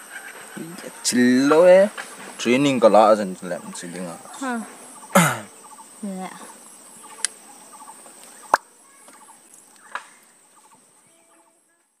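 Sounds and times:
bird calls: 0.0s - 11.7s
high insect drone: 0.0s - 11.9s.

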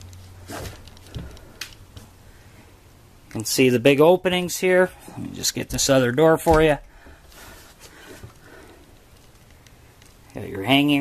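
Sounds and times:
low room noise: 0.0s - 11.0s
wooden wardrobe door opening: 6.4s - 6.9s.

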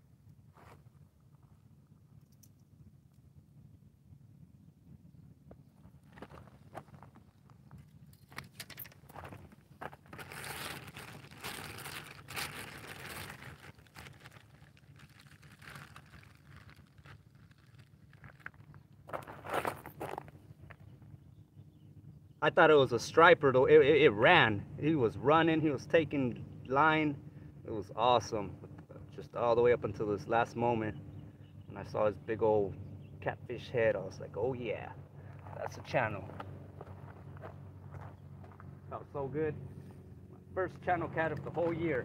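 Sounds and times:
low steady hum: 0.0s - 42.0s
rustling and crunching: 5.8s - 20.8s.

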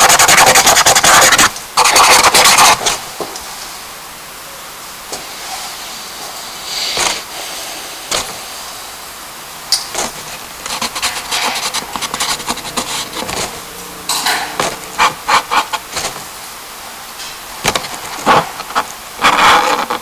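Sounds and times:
hand scrubbing charcoal on paper: 10.6s - 13.2s.

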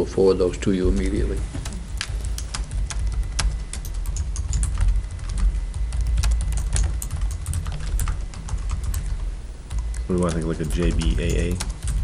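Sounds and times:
low room rumble: 0.0s - 12.0s
laptop keyboard typing: 0.7s - 12.0s.

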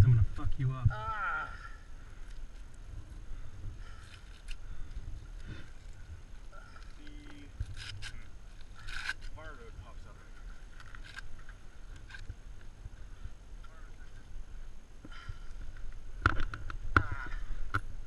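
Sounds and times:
wind rumbling on microphone: 0.0s - 18.0s
bandage rustling and scraping: 5.2s - 9.4s.

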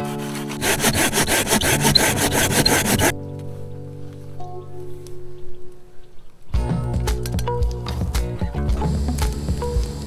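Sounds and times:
hand saw cutting branch: 0.0s - 3.1s.

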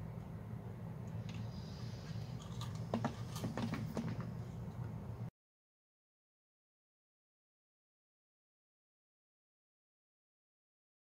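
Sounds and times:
steady low hum: 0.0s - 5.3s
dried gourds clicking and knocking: 2.5s - 4.4s.

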